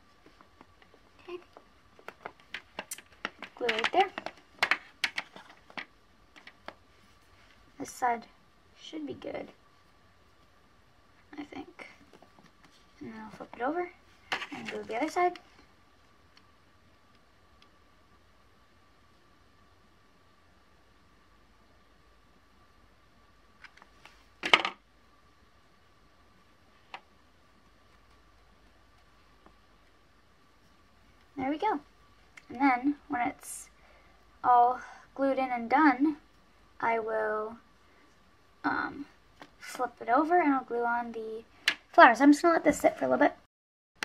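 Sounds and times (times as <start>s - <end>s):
faint steady high hum: 0.0s - 43.5s.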